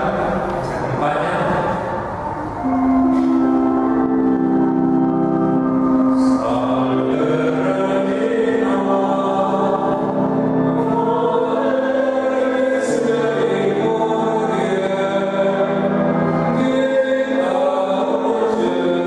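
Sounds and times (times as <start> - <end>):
choir singing a hymn: 0.0 - 19.0.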